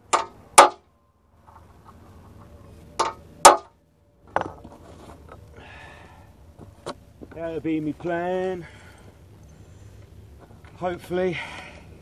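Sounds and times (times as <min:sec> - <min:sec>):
faint clattering: 0:04.2 - 0:05.5
metal clinks and knocks: 0:04.3 - 0:05.4.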